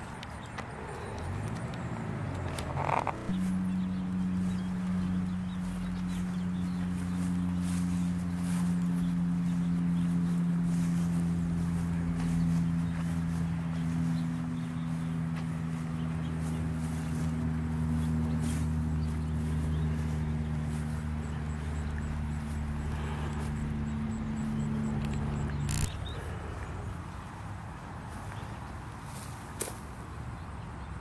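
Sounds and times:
low mechanical hum: 0:00.0 - 0:28.5.

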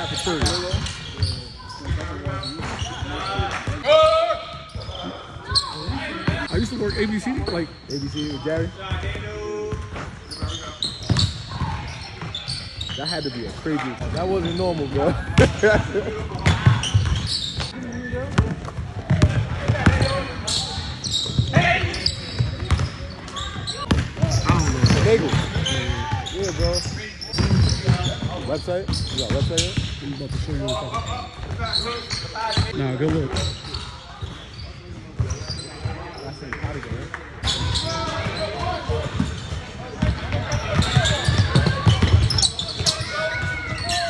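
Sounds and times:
sneaker squeaks: 0:00.0 - 0:36.8, 0:37.4 - 0:44.0
basketball bouncing on gym floor: 0:15.3 - 0:20.2, 0:21.2 - 0:23.0, 0:23.8 - 0:30.6, 0:37.5 - 0:43.9
basketball bouncing on wooden floor: 0:18.3 - 0:20.1, 0:22.4 - 0:22.9, 0:23.8 - 0:25.8.

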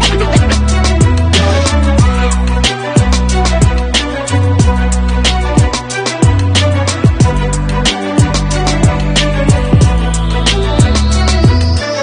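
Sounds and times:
deep bass notes sliding down: 0:00.0 - 0:03.9
background music with steady beat: 0:00.0 - 0:12.0.

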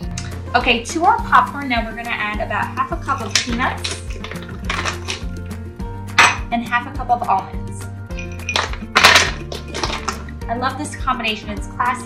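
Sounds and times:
background music with bass line: 0:00.0 - 0:12.0
peanuts clinking on metal sheet: 0:03.2 - 0:05.4, 0:08.2 - 0:10.3.

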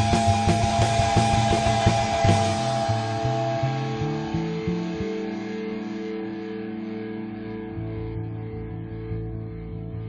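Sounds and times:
electric guitar and bass: 0:00.0 - 0:10.0.

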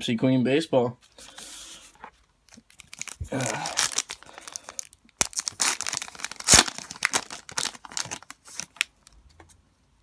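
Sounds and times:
wrapper rustling: 0:02.0 - 0:09.1
wrapper crinkling as torn: 0:02.5 - 0:09.2.

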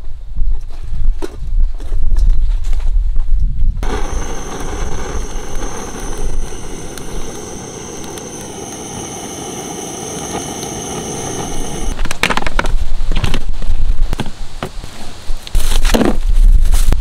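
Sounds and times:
gas torch flame blowing: 0:03.8 - 0:12.0.

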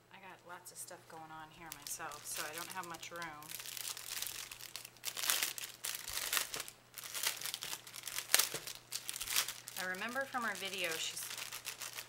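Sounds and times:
plastic bag crinkling: 0:01.5 - 0:12.0.

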